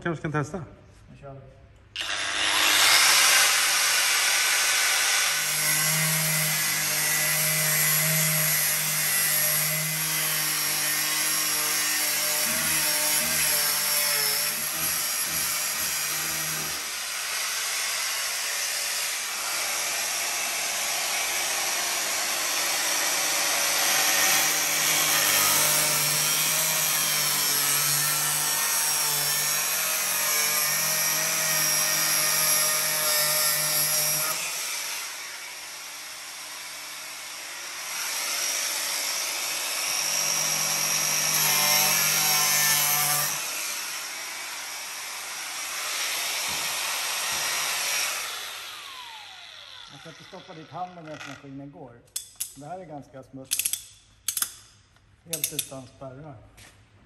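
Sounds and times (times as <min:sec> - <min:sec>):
angle grinder cutting steel: 0:02.0 - 0:51.6.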